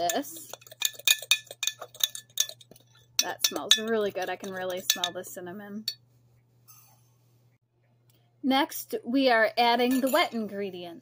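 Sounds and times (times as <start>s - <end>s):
spoon clinking in ceramic mug: 0.0s - 5.2s.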